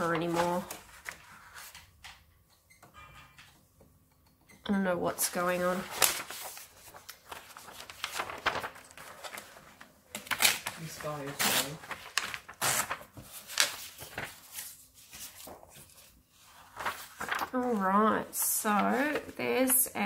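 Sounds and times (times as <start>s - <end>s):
paper rustling: 0.0s - 2.0s, 5.2s - 20.0s.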